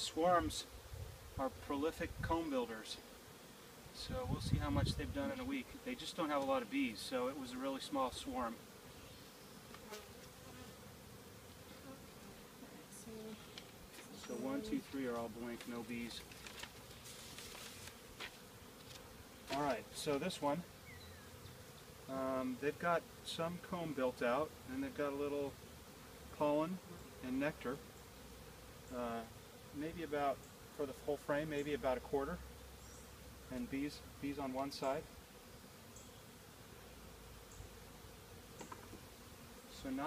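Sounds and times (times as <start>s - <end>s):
honeybees buzzing: 0.0s - 40.0s.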